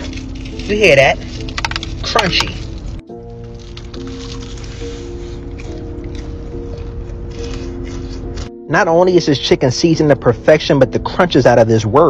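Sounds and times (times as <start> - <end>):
fried chicken crunching: 0.0 - 8.5
background music with chords: 0.0 - 12.0.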